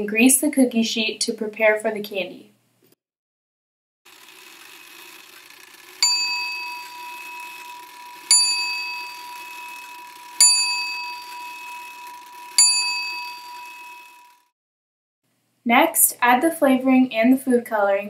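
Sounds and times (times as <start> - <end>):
metallic bell ding: 6.0 - 7.6, 8.3 - 14.2.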